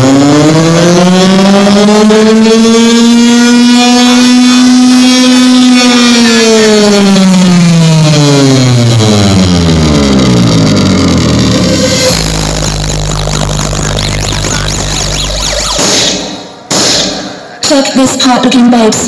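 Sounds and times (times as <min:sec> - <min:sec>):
buzzy electronic tone gliding: 0:09.8 - 0:16.6.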